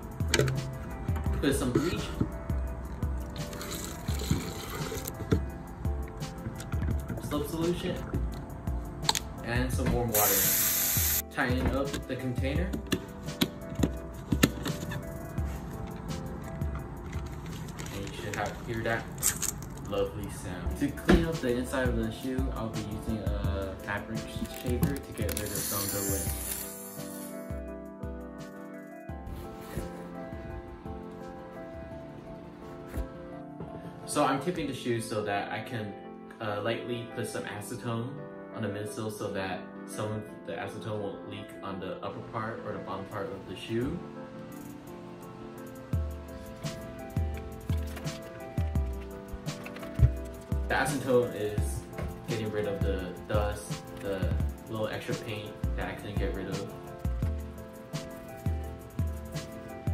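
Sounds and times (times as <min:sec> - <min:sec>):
background music with beat: 0:00.0 - 0:19.4, 0:20.2 - 0:34.9, 0:43.7 - 0:59.9.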